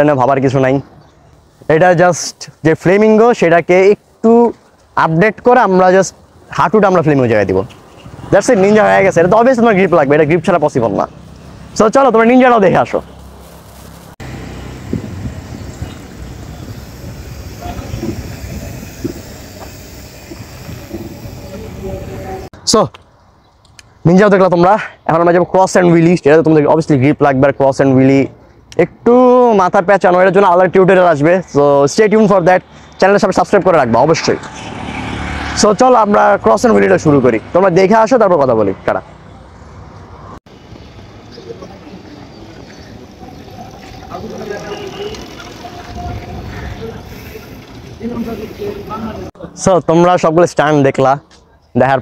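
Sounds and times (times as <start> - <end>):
low street noise rumble: 0.0 - 52.0
outdoor background noise: 0.0 - 52.0.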